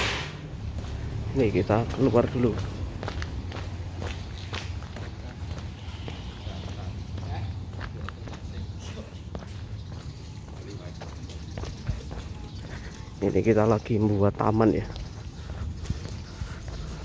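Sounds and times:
footsteps on brick paving: 0.5 - 17.0.

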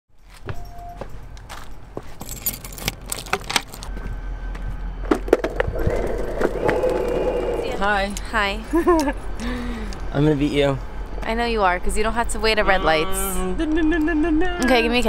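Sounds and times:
noisy hum: 4.6 - 9.4.

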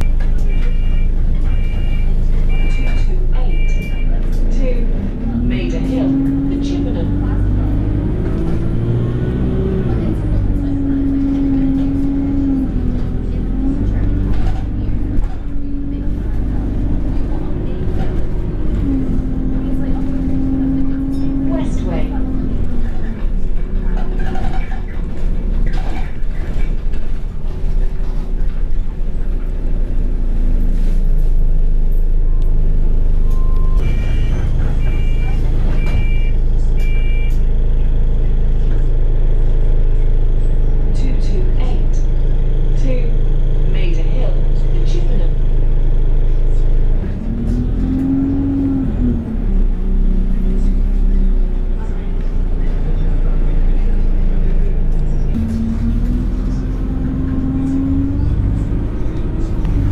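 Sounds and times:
bus engine and gearbox whine: 0.0 - 59.9.

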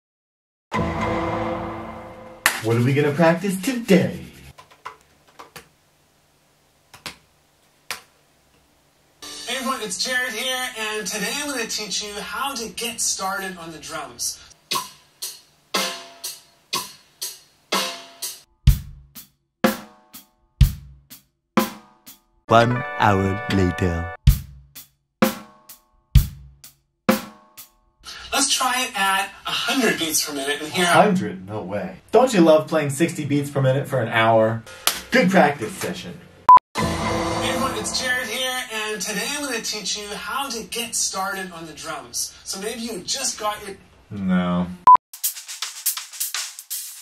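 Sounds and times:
drum kit played with sticks: 19.7 - 20.0, 26.2 - 26.5, 27.1 - 27.5, 36.8 - 38.5.

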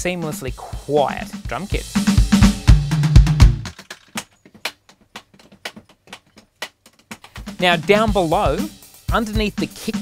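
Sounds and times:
sharp drum taps: 1.1 - 8.6.

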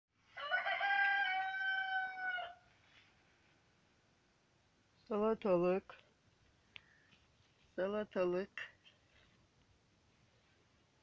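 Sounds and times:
rooster crowing: 0.3 - 2.7.

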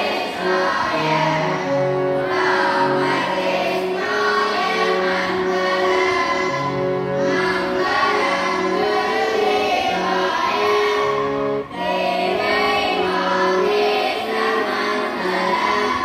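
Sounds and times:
instrumental accompaniment: 0.0 - 16.0
people singing a hymn: 0.0 - 16.0.

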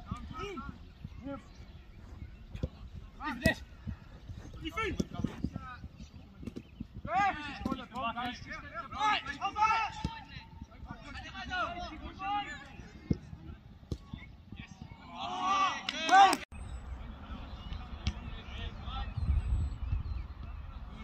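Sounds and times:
feet kicking ball: 0.1 - 8.0
people shouting: 15.0 - 16.4.

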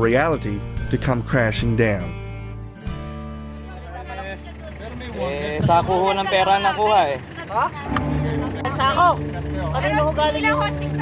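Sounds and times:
vehicle engine humming: 2.9 - 11.0.

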